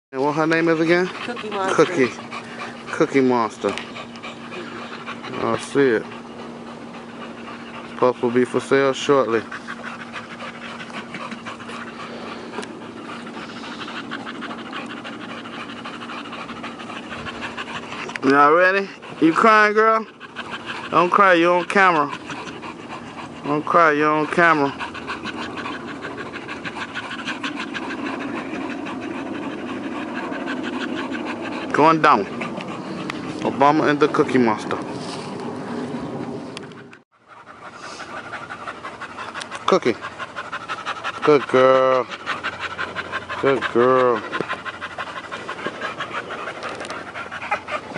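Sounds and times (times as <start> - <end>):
dogs panting rapidly: 0.2 - 47.9.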